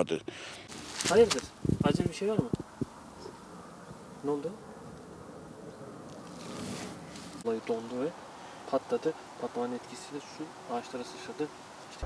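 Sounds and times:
wind noise on microphone: 1.0s - 3.3s.

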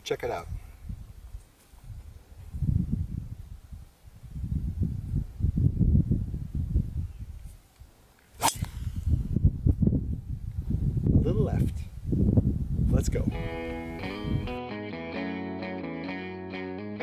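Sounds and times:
wind buffeting microphone: 0.0s - 7.6s, 8.4s - 14.6s
golf club striking ball: 8.4s - 9.0s.

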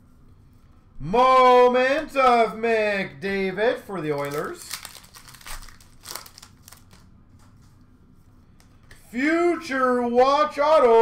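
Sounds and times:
foil wrapper crinkling and tearing: 4.0s - 7.1s.

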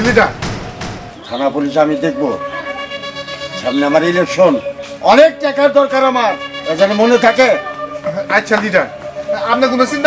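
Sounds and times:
dull thump: 0.0s - 1.3s
man speaking: 3.6s - 10.0s.

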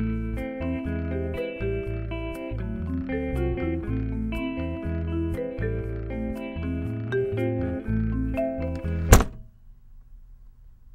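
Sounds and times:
theme music with bass and chimes: 0.0s - 9.1s
loud thunk: 9.0s - 9.5s.

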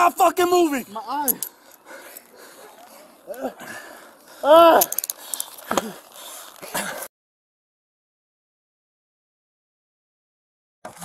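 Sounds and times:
person grunting: 3.3s - 3.7s, 4.4s - 5.0s.

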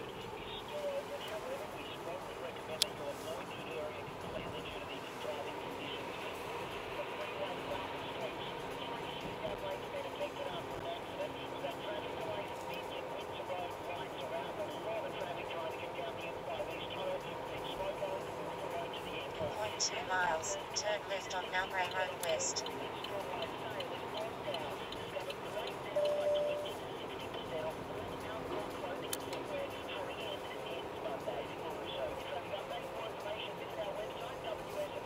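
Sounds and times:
car engine and road noise: 0.0s - 35.0s
faint indistinct voices: 0.0s - 35.0s.

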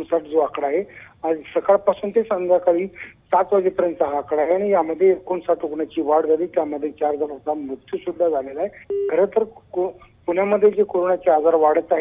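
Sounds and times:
telephone line beep: 8.9s - 9.3s.

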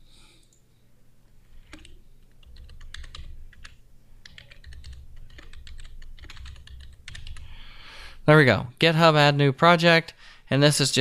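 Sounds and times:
faint low hum: 0.0s - 11.0s
keyboard typing clicks: 1.7s - 7.5s.

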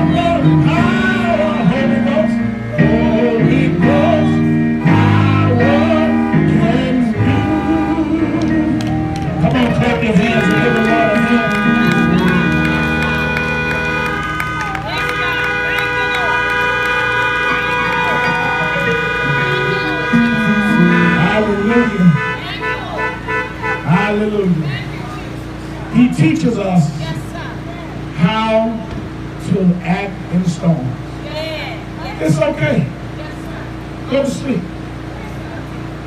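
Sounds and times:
music: 0.0s - 22.4s
raised voices: 0.0s - 28.5s
voices: 0.0s - 36.0s
car horns blasting: 3.2s - 8.6s, 9.4s - 26.4s.

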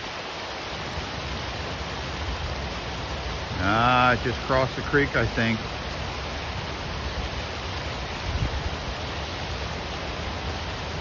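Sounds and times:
wind buffeting microphone: 8.1s - 8.9s.

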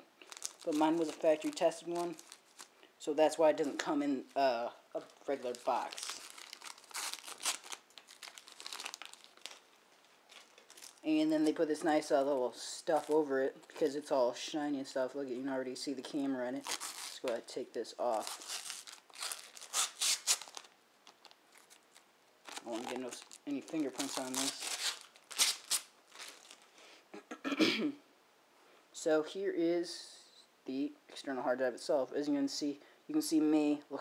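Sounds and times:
plastic packaging crinkling: 0.2s - 4.4s, 5.0s - 14.1s, 16.0s - 26.8s.

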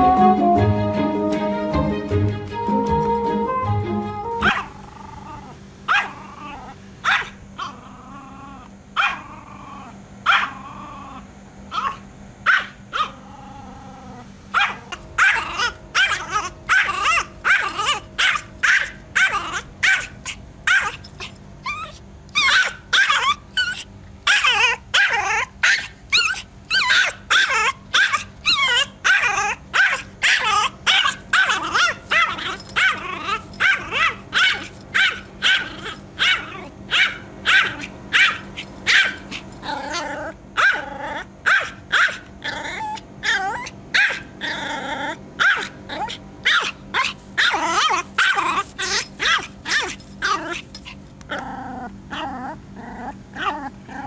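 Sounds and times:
small dog yapping: 4.4s - 54.0s.

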